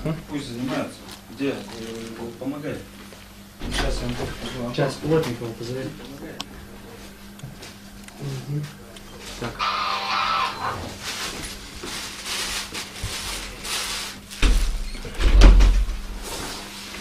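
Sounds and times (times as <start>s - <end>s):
electrical hum: 0.0s - 17.0s.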